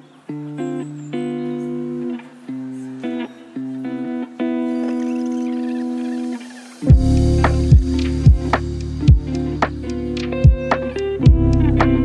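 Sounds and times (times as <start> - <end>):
plucked guitar playing: 0.0 - 12.0.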